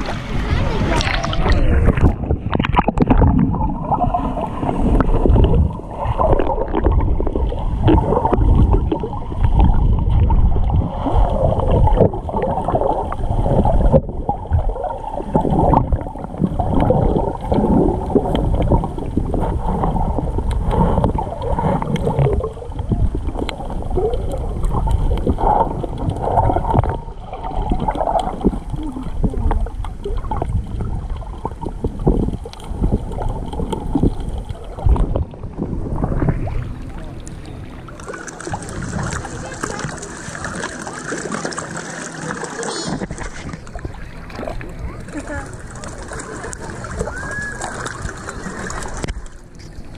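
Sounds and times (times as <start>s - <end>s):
muffled underwater water sloshing: 0.0s - 49.9s.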